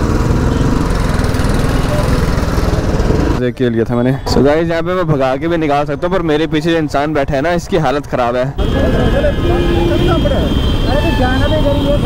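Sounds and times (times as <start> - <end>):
motorcycle engine running: 0.0 - 3.4.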